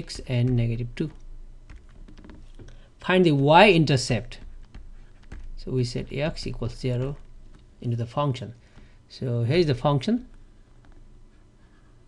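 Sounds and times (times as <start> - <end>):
stylus tapping on drawing tablet: 0.5 - 5.7.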